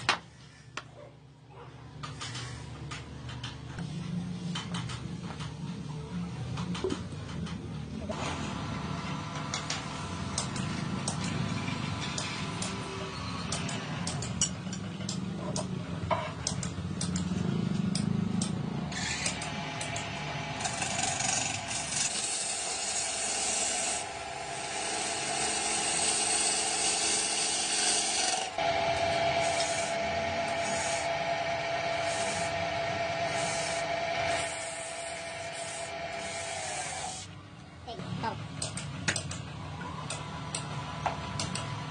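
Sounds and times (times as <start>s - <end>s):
lathe tool scraping wood: 20.6s - 37.2s.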